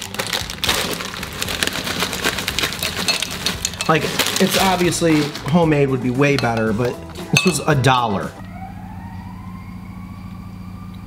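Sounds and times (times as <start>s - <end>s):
crackers pouring into bowl: 0.0s - 5.6s
plastic bag crinkling: 0.0s - 5.6s.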